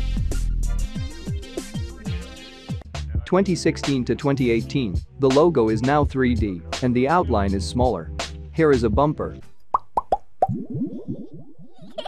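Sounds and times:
cartoon plops falling in pitch: 9.7s - 12.0s.

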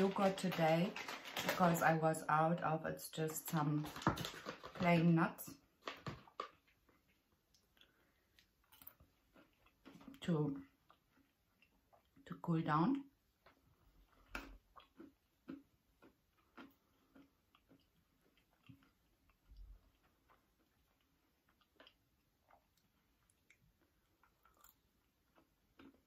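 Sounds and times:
person chewing nuts: 5.8s - 12.2s, 13.1s - 26.0s.

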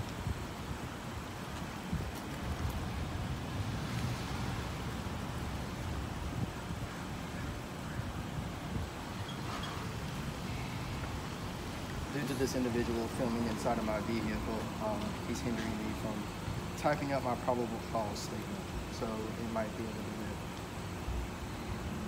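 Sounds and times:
wind on microphone: 0.0s - 12.8s.

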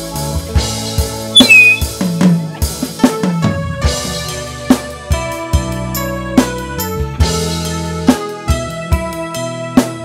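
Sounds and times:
high whistle: 1.4s - 1.9s.

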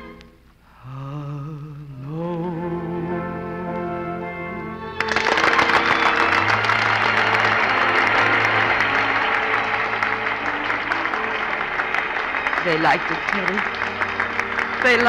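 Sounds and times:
orchestra playing: 2.8s - 15.0s
audience applause: 4.8s - 15.0s.

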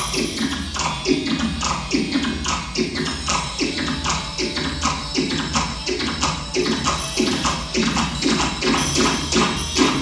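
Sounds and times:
looping tapping strokes: 0.0s - 10.0s.

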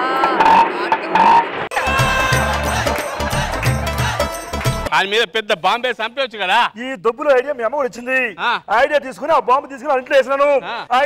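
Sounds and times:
music: 1.7s - 4.9s.

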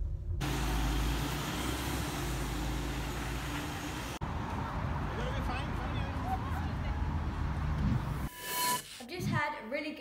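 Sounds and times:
bus engine hum: 0.4s - 8.3s
road noise: 0.4s - 8.4s.

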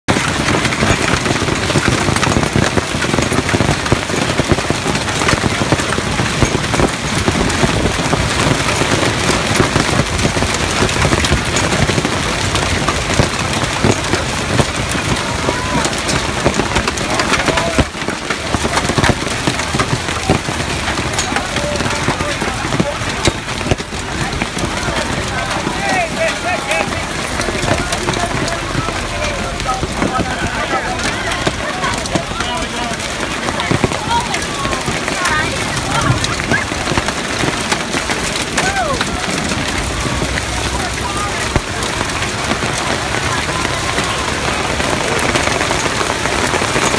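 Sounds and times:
heavy hail on pavement and cars: 0.0s - 46.9s.

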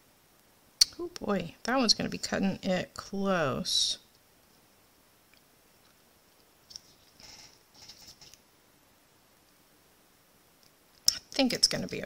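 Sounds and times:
paper rustling: 6.7s - 8.4s.

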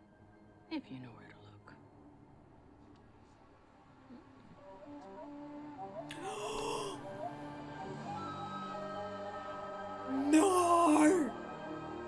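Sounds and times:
faint whispering voice: 6.1s - 7.2s, 10.1s - 11.4s.

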